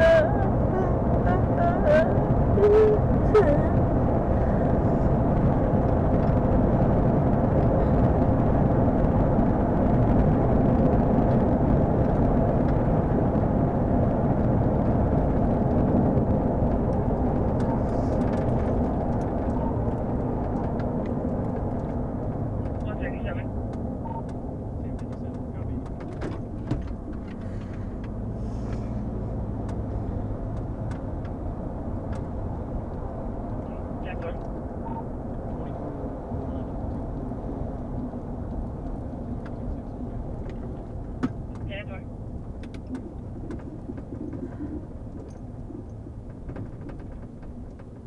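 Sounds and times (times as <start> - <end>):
vehicle road and engine rumble: 0.0 - 48.0.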